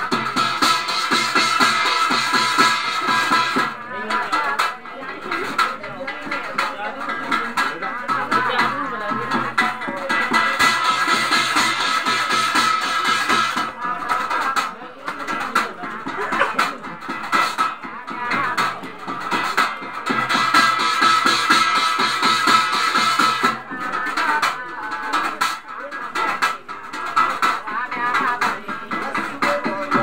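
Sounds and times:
fast drumming: 0:00.0 - 0:30.0
person singing: 0:00.0 - 0:30.0.

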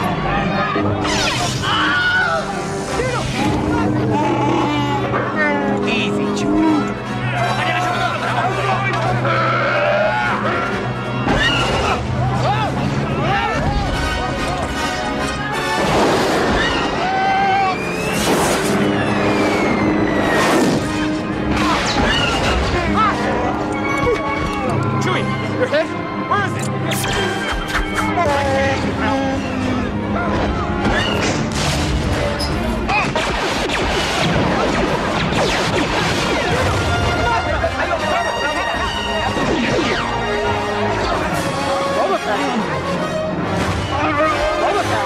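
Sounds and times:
orchestral score: 0:00.0 - 0:45.0
falling whistle-like tones: 0:17.5 - 0:20.7.

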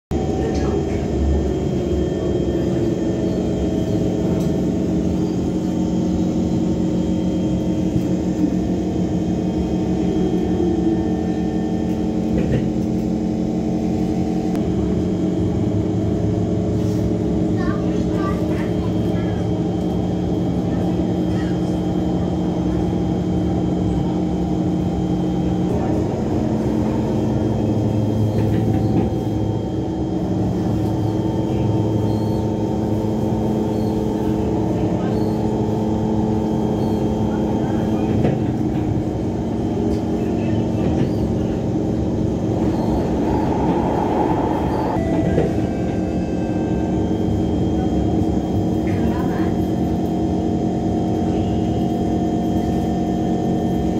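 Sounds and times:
train rumbling: 0:00.1 - 0:53.9.

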